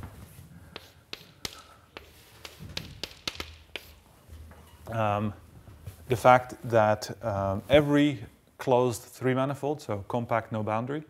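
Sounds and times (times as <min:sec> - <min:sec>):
chalk tapping on blackboard: 0:00.7 - 0:04.1.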